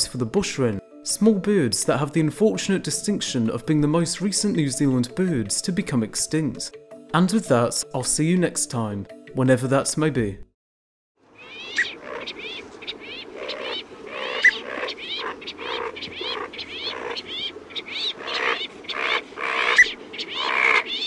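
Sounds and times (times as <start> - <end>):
birds calling: 11.3 - 21.0.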